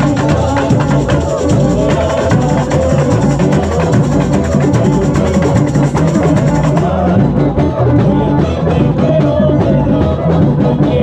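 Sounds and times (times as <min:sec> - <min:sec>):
hand drums playing rhythm: 0:00.0 - 0:11.0.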